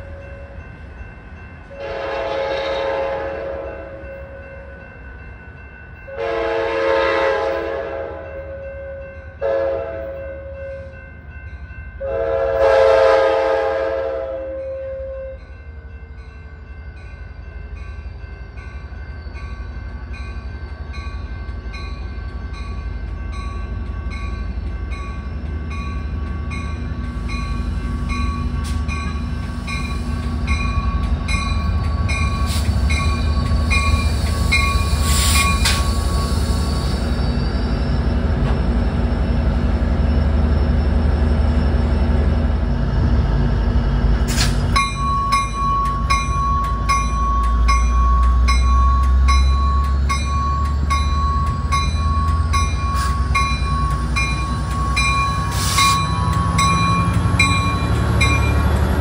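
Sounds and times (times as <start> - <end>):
crossing warning bell ringing: 0.0 - 59.0
train rumble: 0.0 - 59.0
locomotive horn blasts: 1.8 - 4.0, 6.1 - 8.3, 9.4 - 10.2, 12.0 - 15.4.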